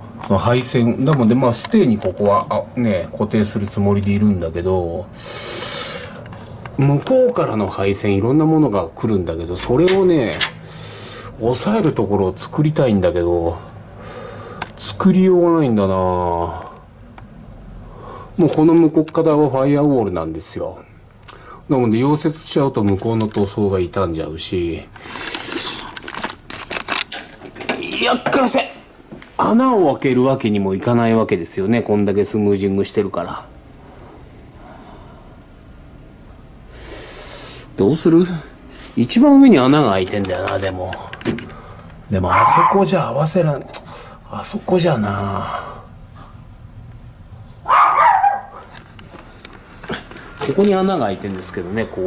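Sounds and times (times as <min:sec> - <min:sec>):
camera handling clicks and rattles: 0:25.2 - 0:27.8, 0:40.0 - 0:41.5
dog barking: 0:42.3 - 0:42.9, 0:47.6 - 0:48.7.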